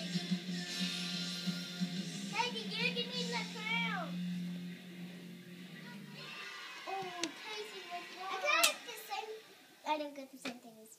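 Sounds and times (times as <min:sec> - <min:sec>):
children calling: 0:05.7 - 0:09.9
children squealing: 0:05.8 - 0:09.4.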